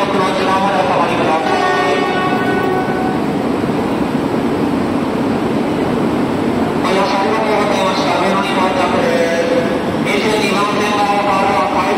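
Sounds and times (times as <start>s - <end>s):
train rumbling: 0.0s - 11.9s
train whine: 0.0s - 11.9s.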